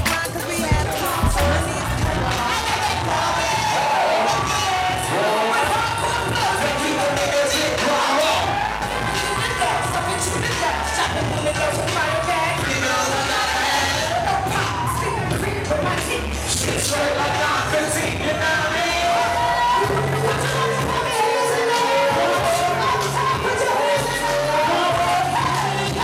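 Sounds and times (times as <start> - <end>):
loud backing beat: 0.0 - 3.3
woman rapping into microphone: 0.0 - 3.8, 19.4 - 26.0
crowd noise: 0.0 - 26.0.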